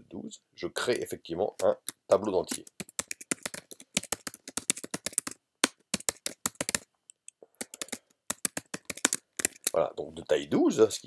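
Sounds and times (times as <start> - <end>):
computer keyboard typing: 1.6 - 6.9, 7.5 - 9.8.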